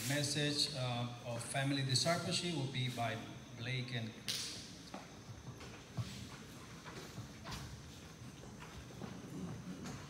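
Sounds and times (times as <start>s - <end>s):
hard-soled footsteps on stage: 4.7s - 10.0s.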